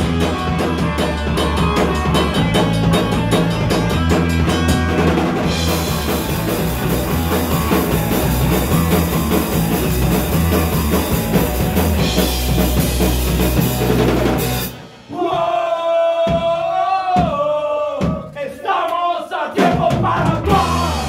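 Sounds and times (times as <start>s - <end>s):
punk rock band playing loud: 0.0s - 15.6s, 19.6s - 21.0s.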